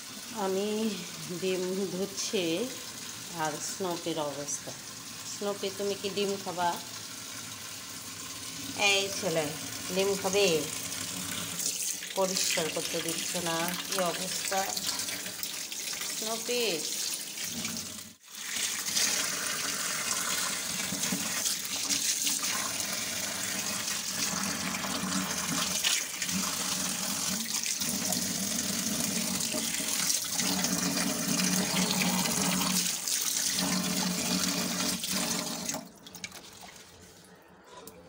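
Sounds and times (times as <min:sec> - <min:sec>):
tap water running into sink: 0:09.6 - 0:36.8.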